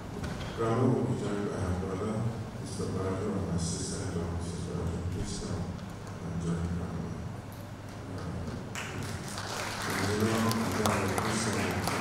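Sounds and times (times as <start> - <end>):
low steady hum: 0.0 - 12.0
hand clapping: 8.2 - 12.0.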